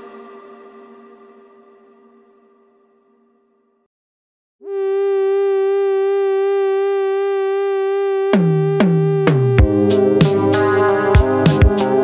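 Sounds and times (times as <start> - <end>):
long held synthesizer note: 4.6 - 12.0.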